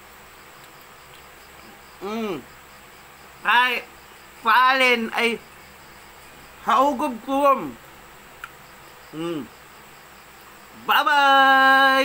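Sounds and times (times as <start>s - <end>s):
insect chirping: 0.0s - 12.0s
man humming: 2.0s - 2.5s, 9.1s - 9.5s.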